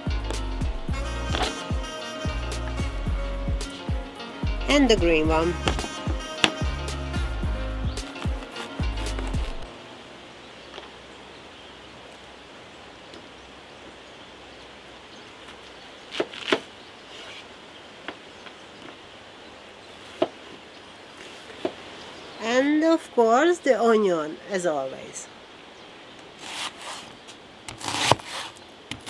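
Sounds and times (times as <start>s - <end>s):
background music: 0.0s - 10.7s
faint steady hiss: 0.0s - 29.0s
knife chopping on wooden board: 5.6s - 6.6s.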